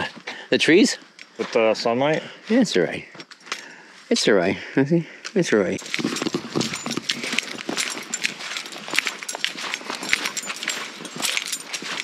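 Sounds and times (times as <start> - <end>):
footsteps running on sandy dirt: 5.8 - 12.0.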